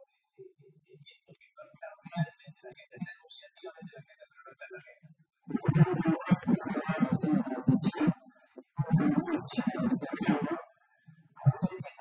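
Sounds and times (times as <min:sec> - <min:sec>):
man talking faintly: 0:00.4 - 0:08.1
man speaking into a microphone: 0:00.9 - 0:04.9.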